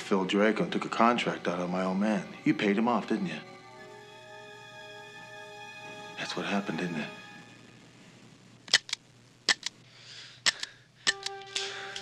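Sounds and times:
sharp cracks: 8.6 - 12.0.

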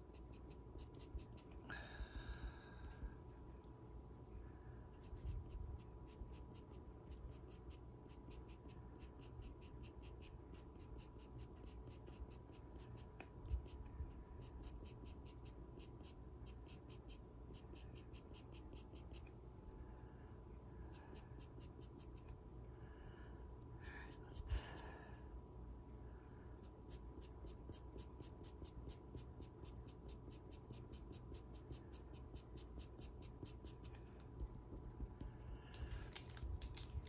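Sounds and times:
pastel pencil scratching on card: 0.0 - 1.6, 5.0 - 19.3, 20.9 - 22.4, 26.6 - 35.6.

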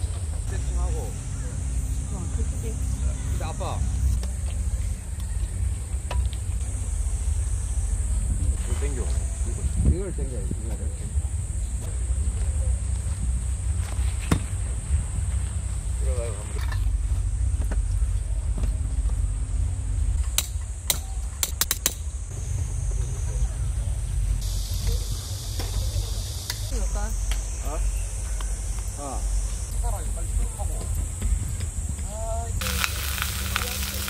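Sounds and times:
steady high hiss: 23.8 - 31.0, 31.8 - 34.0
faint voices: 32.6 - 34.0.

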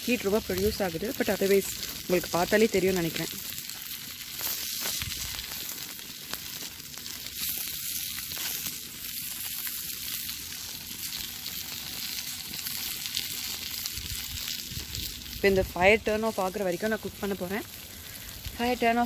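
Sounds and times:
chicken sizzling on foil: 0.0 - 19.0.

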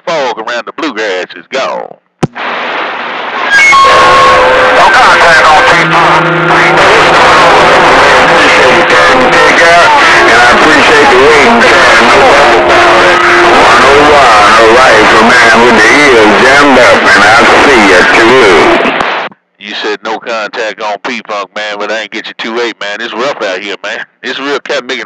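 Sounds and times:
garbled radio voices: 0.0 - 25.0
radio static hiss: 2.2 - 25.0.

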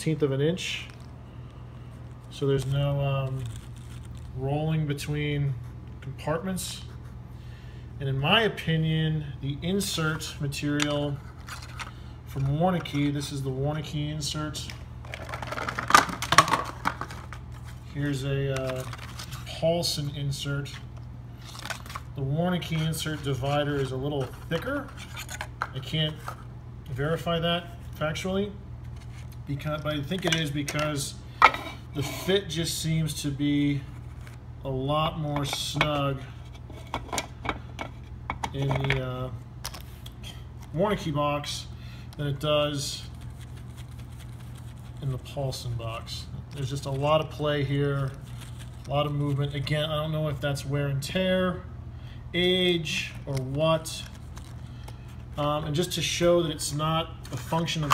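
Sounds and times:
steady low hum: 0.0 - 57.9.

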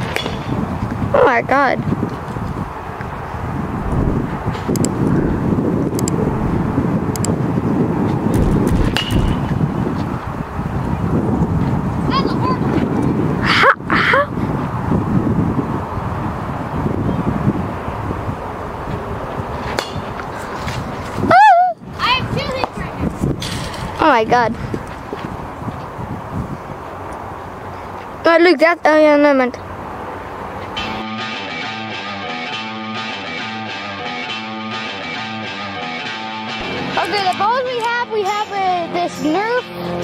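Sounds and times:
low rumbling noise: 2.6 - 11.5
children's voices: 12.1 - 12.8, 21.9 - 23.1, 36.9 - 40.0.

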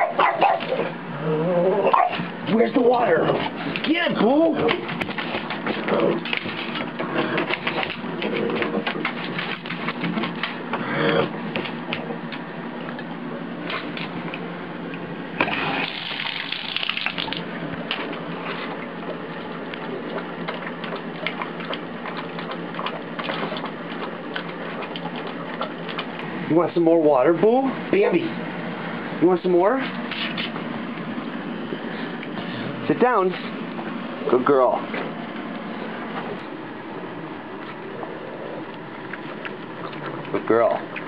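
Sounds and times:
dog lapping water: 2.0 - 14.5, 15.3 - 26.4, 37.6 - 41.0
water running into bathtub: 15.4 - 18.0.

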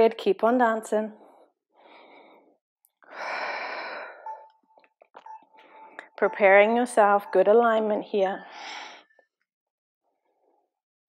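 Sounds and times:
woman breathing hard: 1.2 - 4.4.

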